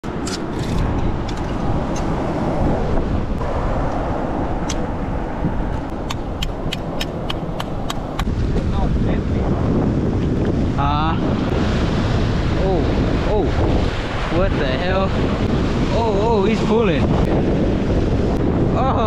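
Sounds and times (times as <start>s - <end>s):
rushing wind: 0.0s - 19.0s
knife blade clicking on rock and shells: 6.1s - 8.3s
surf: 7.5s - 19.0s.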